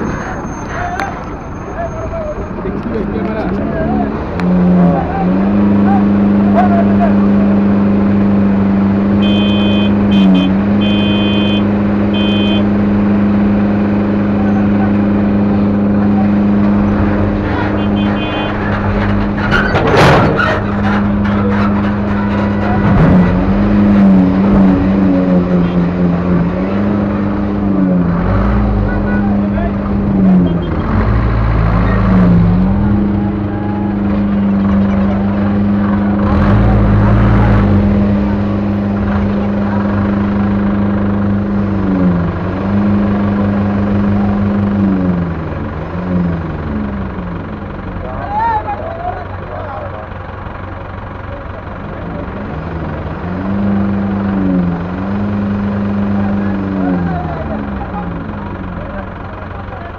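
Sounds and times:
engine drone in traffic: 0.0 - 59.9
short high horn beeps: 9.2 - 12.6.

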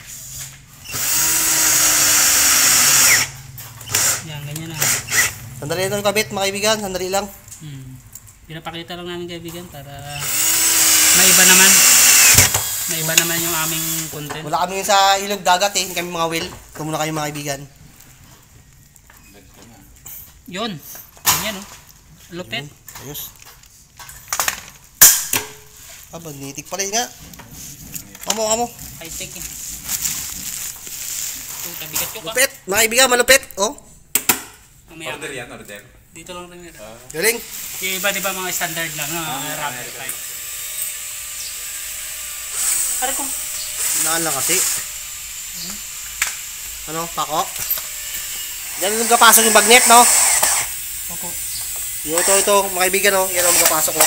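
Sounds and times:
cordless drill into wood: 0.8 - 5.4, 10.1 - 14.3, 37.4 - 54.0
sharp metallic clack: 25.0 - 25.6.

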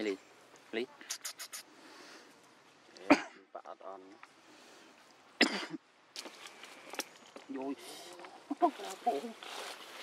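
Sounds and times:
faint outdoor background: 0.0 - 10.0
short cough: 3.1 - 3.4, 5.4 - 5.8.

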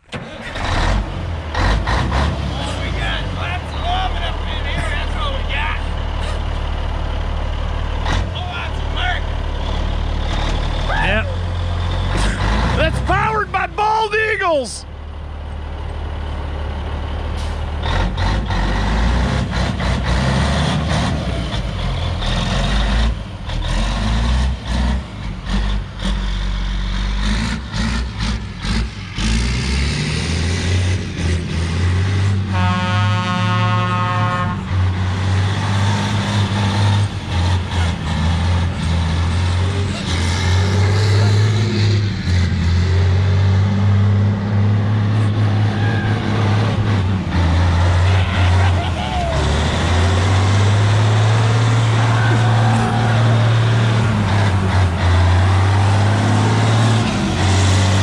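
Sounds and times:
diesel truck engine running hard: 0.0 - 58.0
people whooping and laughing: 45.6 - 46.4, 48.0 - 49.7, 51.8 - 54.0.

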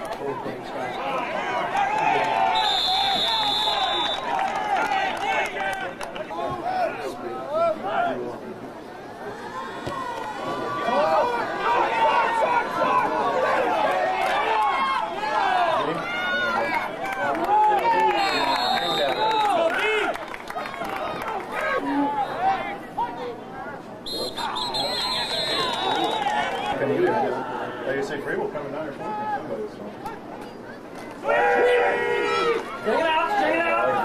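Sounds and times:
crowd shouting: 0.0 - 8.2, 9.2 - 28.0, 31.2 - 34.0.

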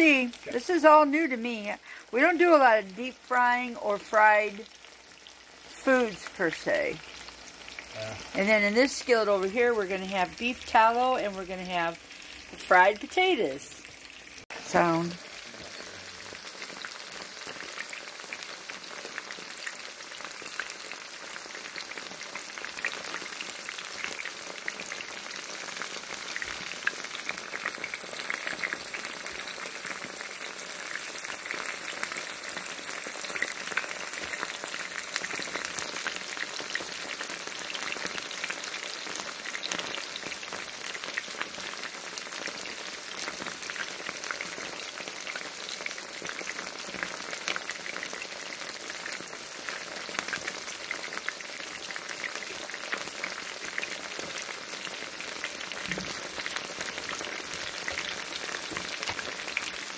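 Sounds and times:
chicken frying in oil: 0.0 - 59.9.

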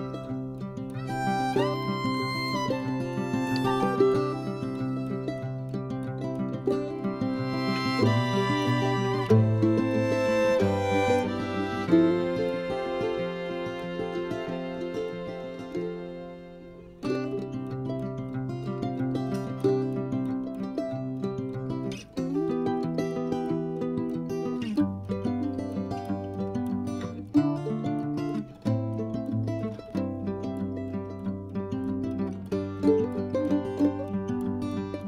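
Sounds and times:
plucked string tune: 0.0 - 35.0.

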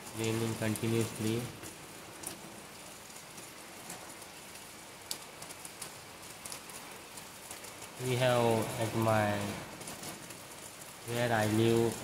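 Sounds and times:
rain hissing: 0.0 - 12.0.

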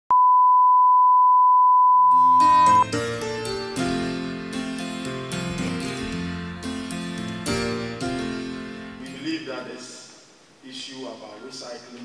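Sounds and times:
steady test tone: 0.1 - 2.9.

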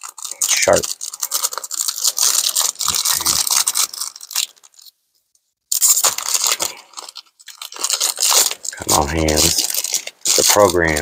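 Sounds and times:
foil wrapper crinkling and tearing: 0.0 - 5.0, 5.7 - 11.0.

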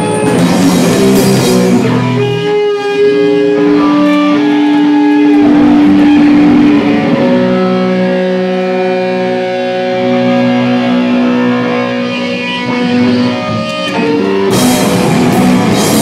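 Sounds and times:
drumming: 0.0 - 2.6, 13.6 - 16.0
electric guitar chords: 0.0 - 16.0.

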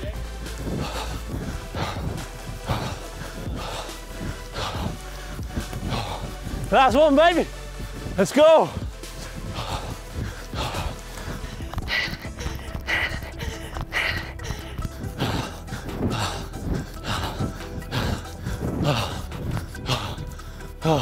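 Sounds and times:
runner gasping for breath: 0.0 - 6.9, 7.5 - 21.0
running footfalls: 0.0 - 20.2
background music: 0.0 - 21.0.

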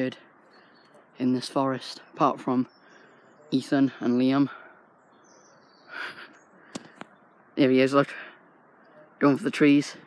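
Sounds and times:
faint bird calls: 0.0 - 1.2, 2.0 - 7.6.

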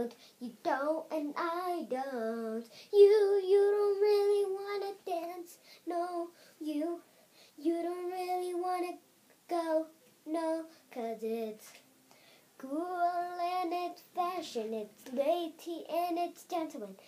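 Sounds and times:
girl singing: 0.0 - 11.9, 12.6 - 17.0.

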